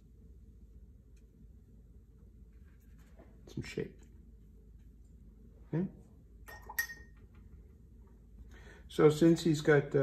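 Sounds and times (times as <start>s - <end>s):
paintbrush clinking against glass jar: 6.5s - 7.2s.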